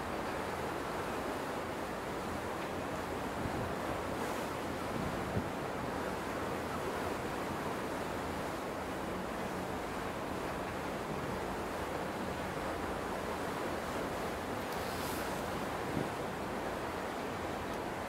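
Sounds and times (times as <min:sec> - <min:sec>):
sea water rushing: 0:00.0 - 0:18.0
wind: 0:00.0 - 0:18.0.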